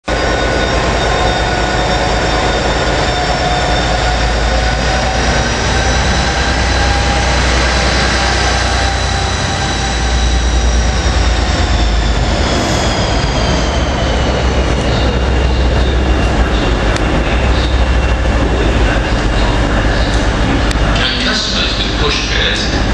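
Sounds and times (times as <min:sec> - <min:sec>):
diesel locomotive rumbling past: 0:00.0 - 0:22.9
high whine: 0:00.0 - 0:22.9.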